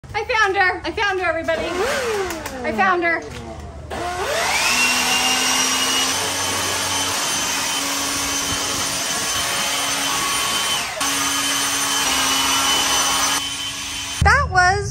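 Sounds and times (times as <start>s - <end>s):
leaf blower whining: 1.5s - 14.3s.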